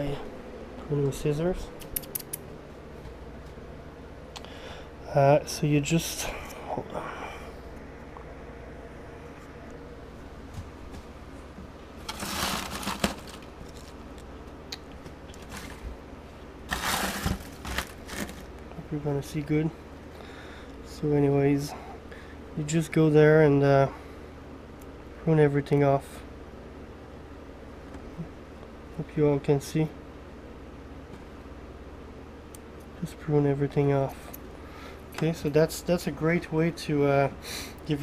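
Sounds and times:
low hum and hiss: 0.0 - 38.0
scissors snipping: 1.8 - 2.4
leaves rustling and crinkling: 10.5 - 18.7.

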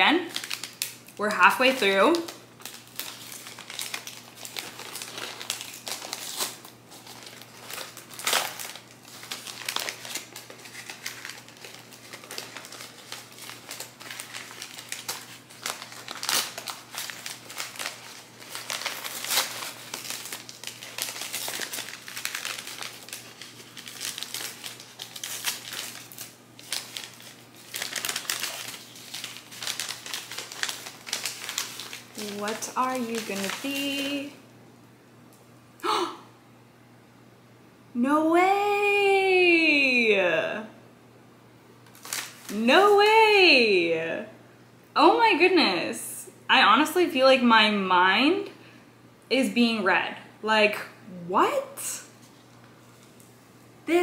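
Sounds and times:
paper wrapping crinkling: 0.2 - 34.4, 41.8 - 43.2.

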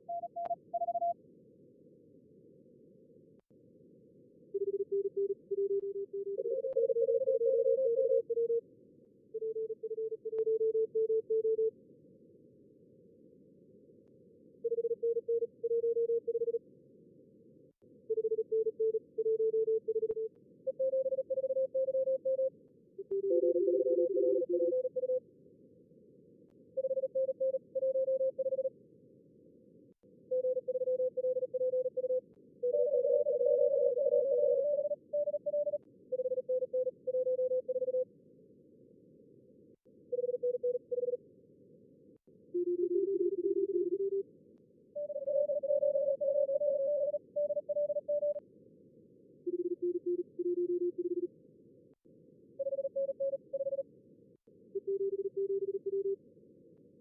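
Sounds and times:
morse code beeps: 4.6 - 8.6, 30.4 - 38.0, 40.2 - 41.2, 42.6 - 44.2, 45.0 - 48.4, 49.5 - 51.3, 54.8 - 56.2.

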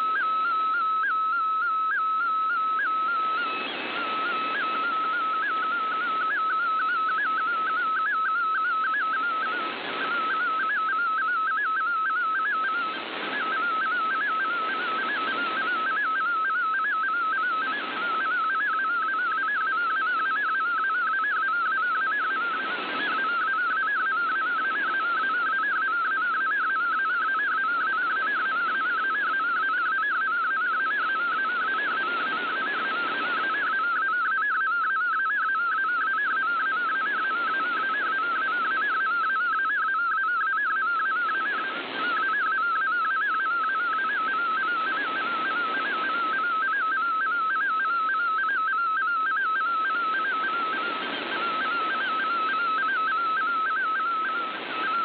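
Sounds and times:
warbling data tone: 0.0 - 55.0
shortwave radio hiss: 9.2 - 10.6, 12.8 - 16.0, 22.3 - 23.4, 31.2 - 33.8, 41.3 - 47.0, 49.8 - 55.0.

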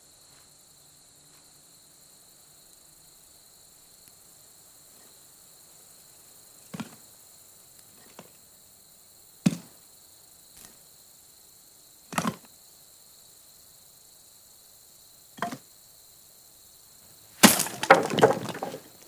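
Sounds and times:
firewood dropping with wooden knocks: 15.4 - 15.6, 17.4 - 19.0
clatter of firewood tumbling: 17.4 - 19.0.

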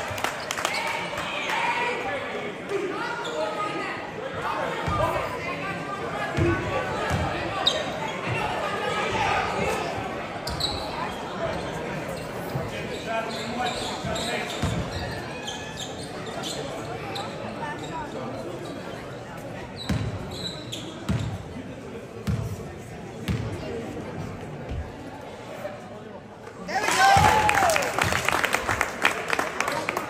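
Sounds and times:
voices echoing in a gymnasium: 0.0 - 30.0.

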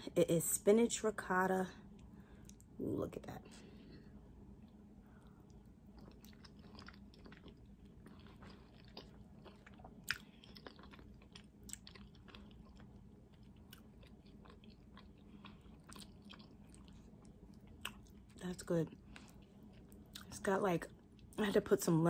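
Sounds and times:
faint chewing: 3.7 - 20.4.

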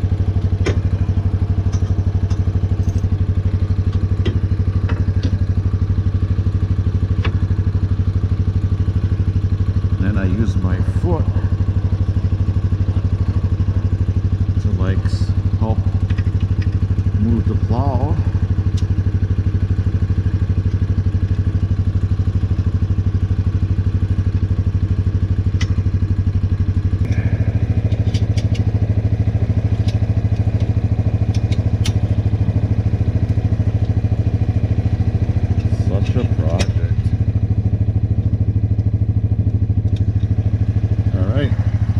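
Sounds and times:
atv engine idling: 0.0 - 41.9
small metallic clicks: 27.8 - 28.8, 29.7 - 32.0, 38.7 - 40.3.

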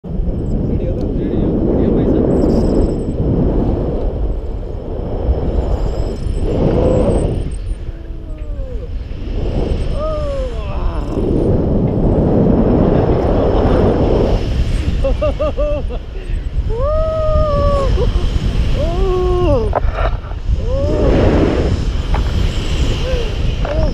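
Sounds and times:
wind buffeting microphone: 0.0 - 23.9.

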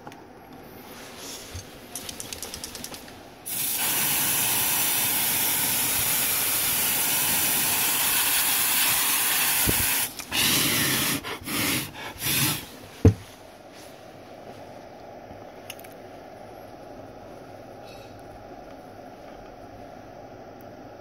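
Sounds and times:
freeze spray hissing: 3.4 - 12.8.

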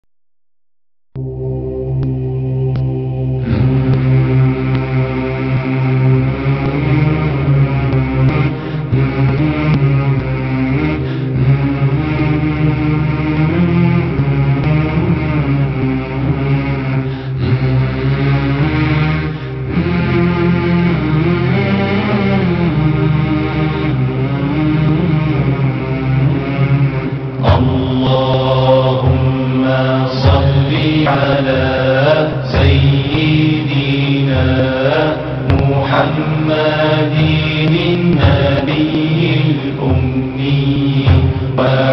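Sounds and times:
fuller brighter sound layer: 1.2 - 41.9
devotional chanting: 2.0 - 41.9.

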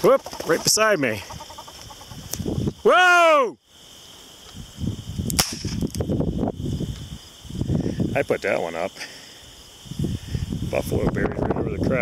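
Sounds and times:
blank pistol shot: 5.3 - 5.8.

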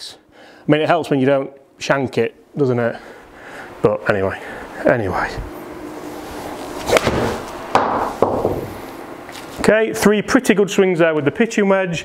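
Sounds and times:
ball hitting impact screen: 7.0 - 8.7.

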